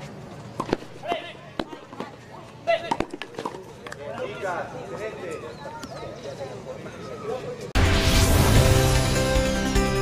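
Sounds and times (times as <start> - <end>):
tennis balls struck by rackets: 0.6 - 4.0.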